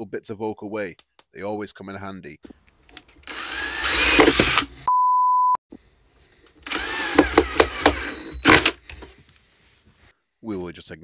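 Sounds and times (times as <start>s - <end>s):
drill clutch clicking: 2.9s - 4.9s, 6.5s - 9.1s
cordless drill whining: 3.0s - 4.9s, 6.5s - 9.1s
steady beep tone: 4.9s - 5.6s.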